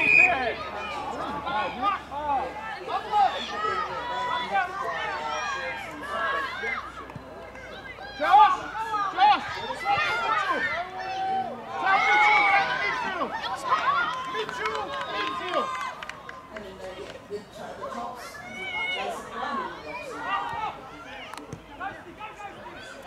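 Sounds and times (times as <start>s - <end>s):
voices shouting: 0.0s - 17.2s, 17.8s - 23.0s.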